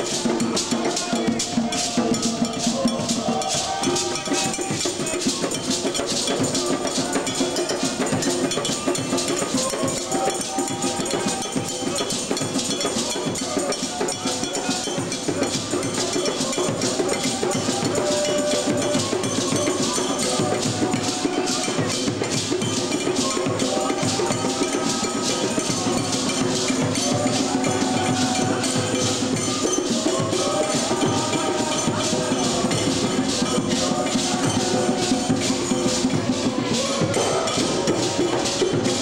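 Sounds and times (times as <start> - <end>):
djembe drum ensemble: 0.0 - 39.0
voices singing: 0.0 - 39.0.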